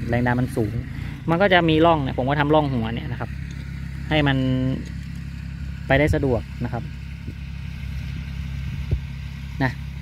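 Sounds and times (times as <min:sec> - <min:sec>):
distant tractor engine running: 0:00.0 - 0:10.0.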